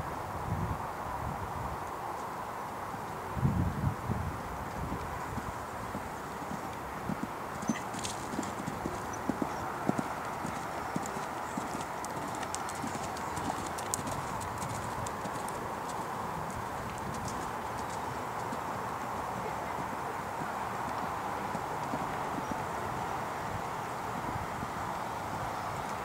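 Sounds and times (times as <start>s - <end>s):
steady background hiss: 0.0s - 26.0s
horse hoofbeats on sand: 4.8s - 24.8s.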